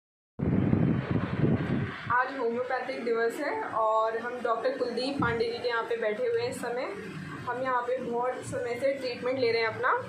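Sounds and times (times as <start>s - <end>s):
loud low rumbling: 0.4s - 2.2s.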